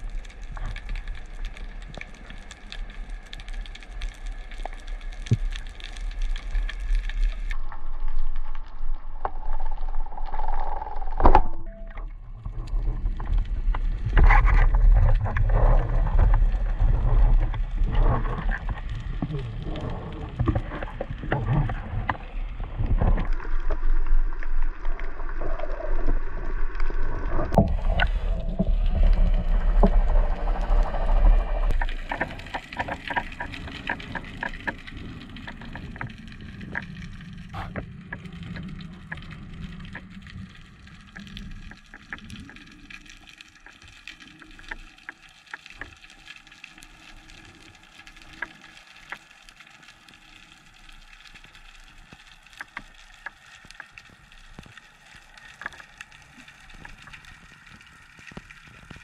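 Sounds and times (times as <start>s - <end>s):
faint clicks and crackles: 0.0s - 59.0s
low rumble of water movement: 0.0s - 59.0s.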